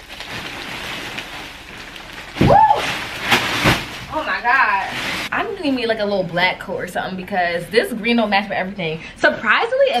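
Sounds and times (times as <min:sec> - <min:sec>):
plastic bag crinkling: 0:00.0 - 0:05.3.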